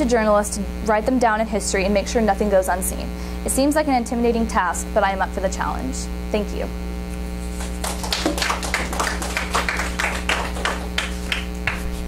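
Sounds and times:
mains hum: 0:00.0 - 0:12.0
audience clapping: 0:07.5 - 0:12.0.

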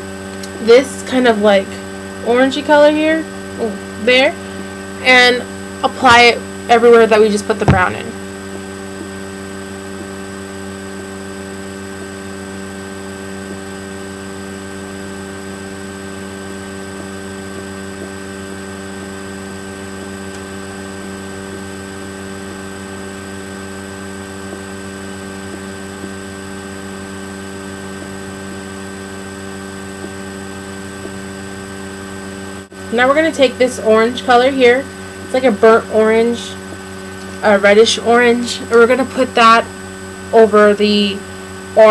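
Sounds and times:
electrical mains hum: 0:00.0 - 0:41.9.

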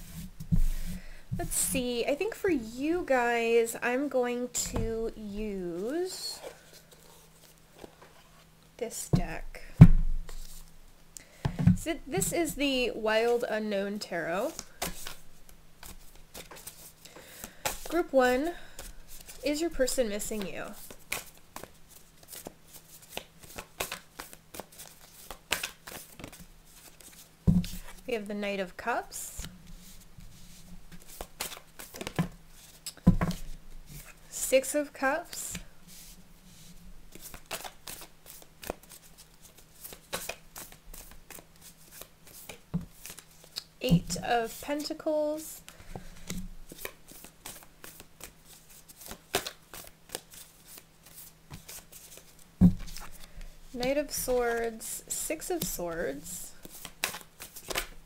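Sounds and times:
cards being shuffled: 0:14.4 - 0:18.0, 0:20.2 - 0:28.0, 0:29.4 - 0:34.2, 0:35.3 - 0:43.7, 0:45.6 - 0:54.6, 0:55.6 - 0:58.0
cards clicking and sliding: 0:20.3 - 0:27.8, 0:31.0 - 0:33.5, 0:37.1 - 0:43.6, 0:56.6 - 0:58.0.

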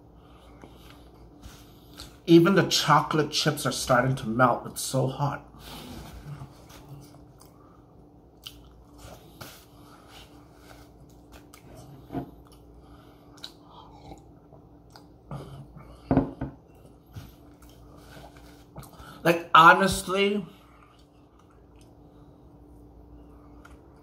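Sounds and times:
chewing a cookie: 0:08.3 - 0:09.6, 0:10.2 - 0:15.9, 0:20.7 - 0:22.8.

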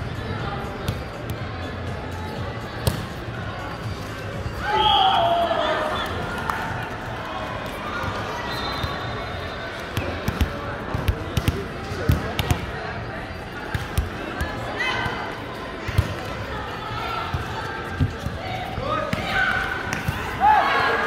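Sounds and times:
players' voices: 0:00.0 - 0:21.0.

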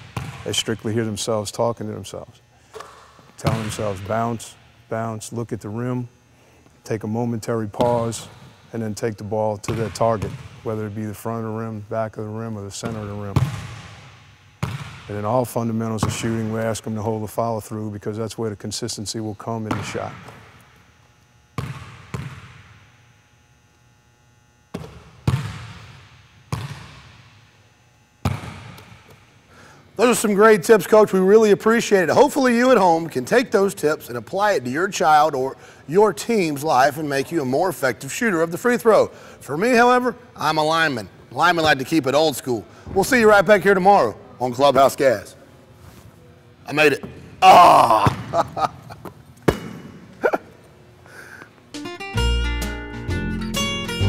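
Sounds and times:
basketball bouncing on hardwood: 0:00.0 - 0:00.5, 0:12.8 - 0:14.0, 0:14.6 - 0:15.0, 0:21.6 - 0:22.7, 0:24.7 - 0:25.9, 0:26.5 - 0:27.0
ball hitting rim: 0:00.0 - 0:00.8, 0:02.7 - 0:04.6, 0:07.7 - 0:08.6, 0:09.6 - 0:10.7, 0:12.8 - 0:17.1, 0:19.6 - 0:20.6, 0:21.6 - 0:22.8, 0:24.7 - 0:27.4, 0:28.2 - 0:29.2, 0:48.0 - 0:48.6, 0:49.4 - 0:50.0.

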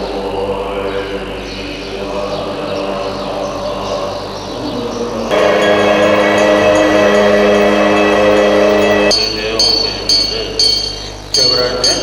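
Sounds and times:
monks chanting in held tones: 0:00.0 - 0:12.0.

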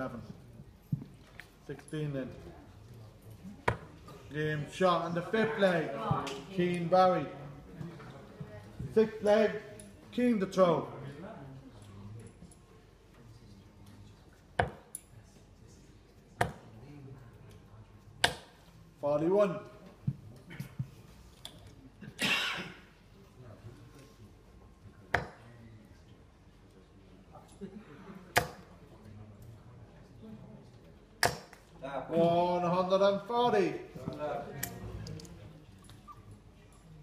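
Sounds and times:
faint background chatter: 0:00.0 - 0:37.0
darts striking dartboard: 0:16.4 - 0:16.6.

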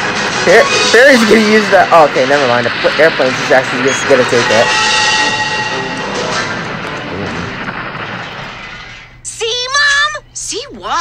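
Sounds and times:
cartoon explosion rumble: 0:06.1 - 0:09.1.

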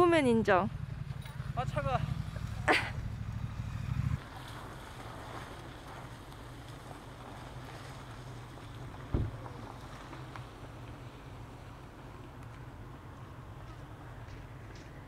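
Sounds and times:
short thump: 0:09.1 - 0:09.4.

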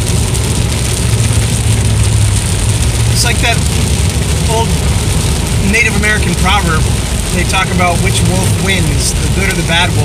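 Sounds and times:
car driving low rumble: 0:00.0 - 0:10.0.

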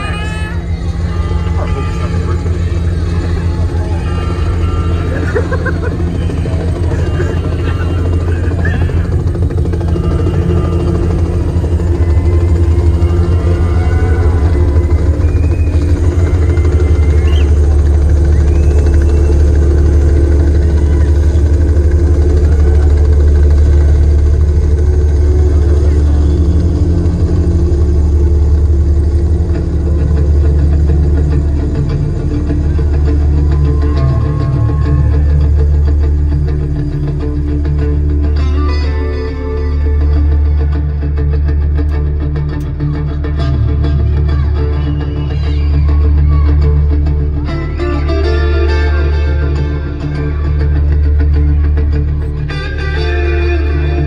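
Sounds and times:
crowd voices and shouts: 0:00.0 - 0:54.0
helicopter sound effect: 0:00.0 - 0:54.0.

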